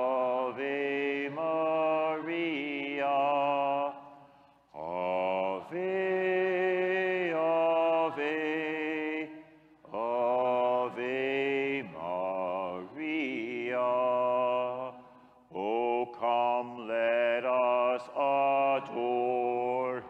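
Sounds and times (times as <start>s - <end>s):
hymn sung in chant style: 0.0s - 20.0s.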